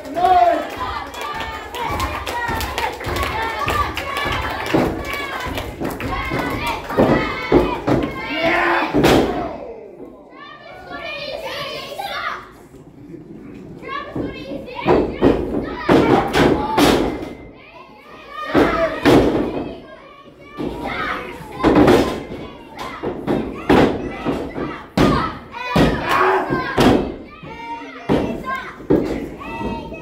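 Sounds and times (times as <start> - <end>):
crowd shouting: 6.0 - 12.3, 25.1 - 28.0.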